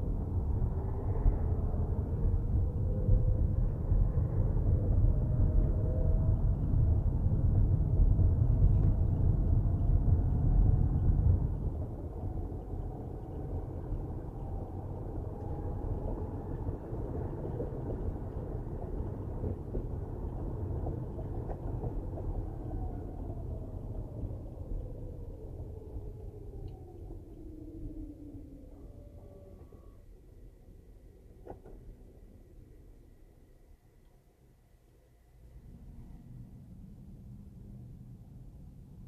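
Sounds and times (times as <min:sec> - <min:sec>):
faint whine drifting in pitch: 0:00.0 - 0:20.9, 0:21.6 - 0:39.0.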